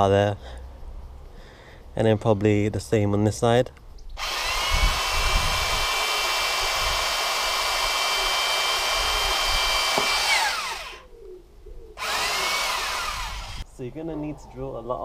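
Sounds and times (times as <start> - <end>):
cordless drill whining: 4.2 - 11.0, 12.0 - 13.6.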